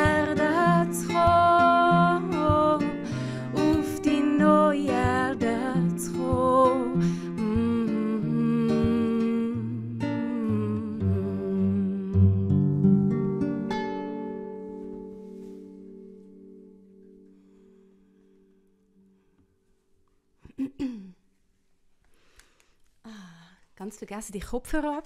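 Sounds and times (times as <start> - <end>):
woman humming: 0.0 - 12.7, 20.5 - 21.2
fingerpicked acoustic guitar: 0.0 - 19.8.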